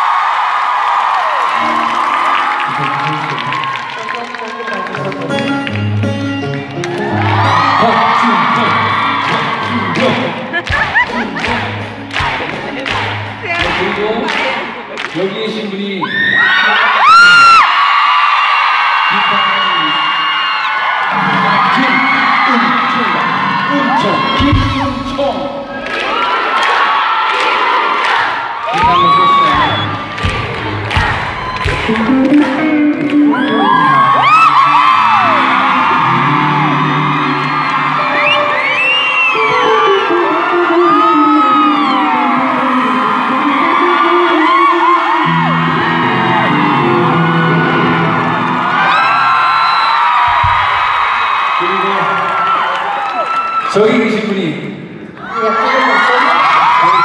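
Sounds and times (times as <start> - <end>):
crowd screaming and cheering: 0.0 - 57.0
electric guitar solo: 31.7 - 48.8.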